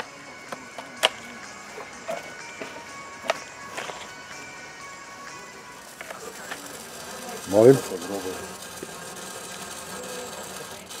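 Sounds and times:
steady machine noise: 0.0 - 11.0.

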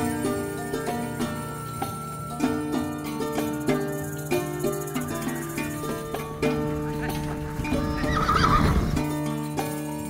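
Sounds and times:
music with held notes: 0.0 - 10.0
horse whinnying: 7.8 - 9.0.

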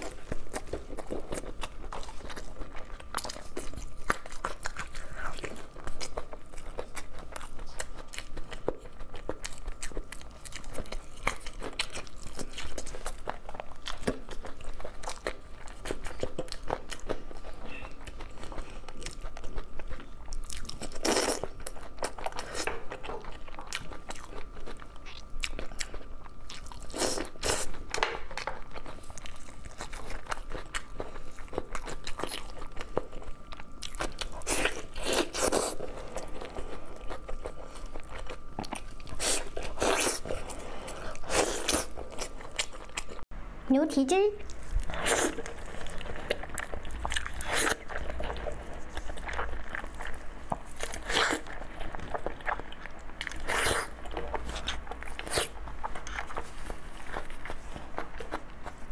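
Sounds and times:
person chewing food: 0.0 - 43.3, 44.4 - 58.9.

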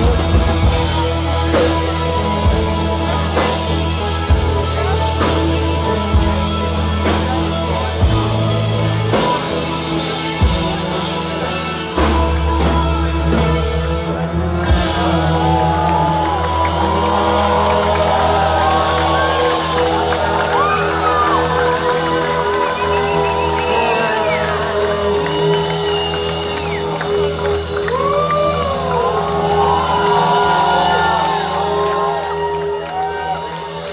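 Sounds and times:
audience cheering and whistling: 14.8 - 33.9.

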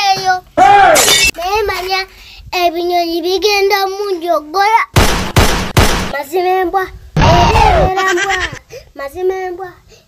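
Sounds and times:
harsh crash-like noise burst: 5.0 - 6.2
child singing: 6.2 - 7.0, 7.6 - 9.9.

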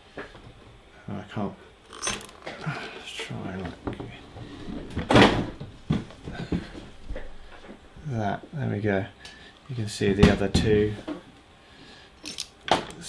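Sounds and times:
knocks and clicks of handling: 12.2 - 13.0.

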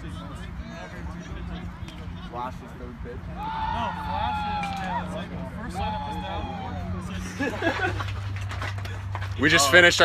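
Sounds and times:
players calling out: 3.2 - 7.4.

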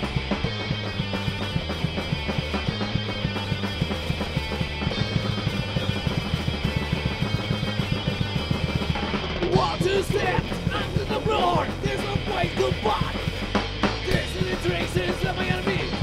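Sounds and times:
distorted electric guitar: 0.0 - 16.0
drum kit: 0.0 - 16.0
electric bass: 0.0 - 16.0.

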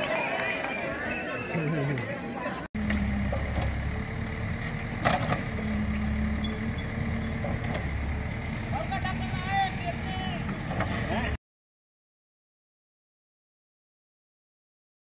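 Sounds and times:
voices calling out: 0.0 - 11.4
backhoe diesel engine running: 0.1 - 11.4.

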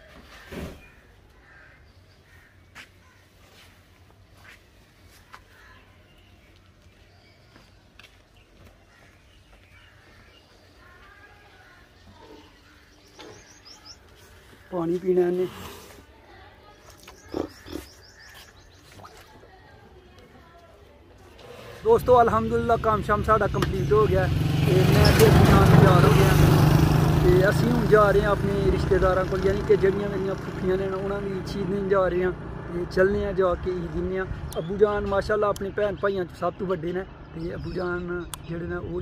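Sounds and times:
faint bird calls: 0.0 - 3.8, 4.4 - 14.9, 16.3 - 19.7
high bird chirps: 11.9 - 14.1.

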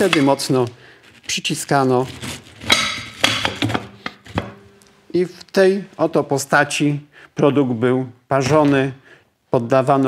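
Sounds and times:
metal clamp clacking and scraping: 2.2 - 4.4.

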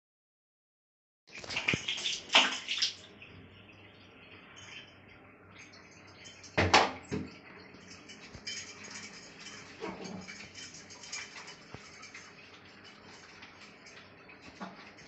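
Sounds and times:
water splashing: 1.3 - 3.2, 5.6 - 15.0.

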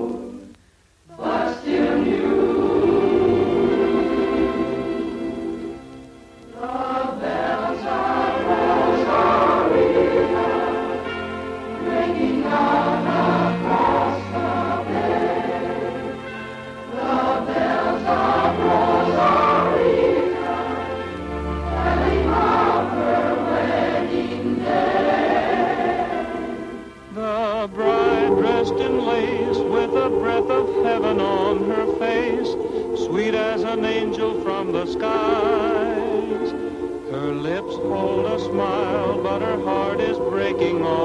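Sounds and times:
chorus singing with accompaniment: 0.0 - 41.0.

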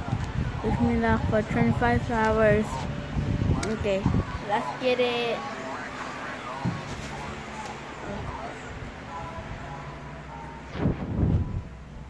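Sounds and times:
muffled low rumble: 5.7 - 12.0.

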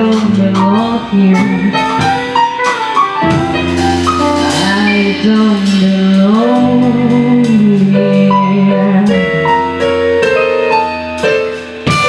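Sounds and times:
jazz funk band music: 0.0 - 12.0.

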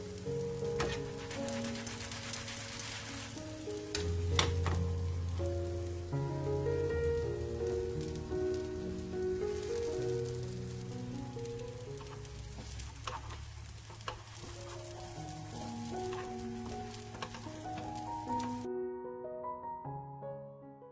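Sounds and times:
background music: 0.0 - 12.6, 14.5 - 20.9
food sizzling in hot oil: 0.0 - 18.7.

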